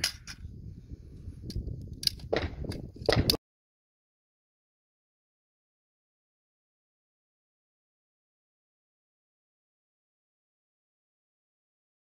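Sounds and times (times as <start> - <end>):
metallic clicks of gun handling: 0.0 - 0.5, 1.4 - 3.4.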